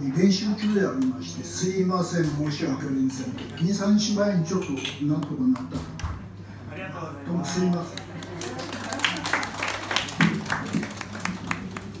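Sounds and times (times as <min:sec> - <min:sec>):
audience clapping: 0:07.5 - 0:12.0.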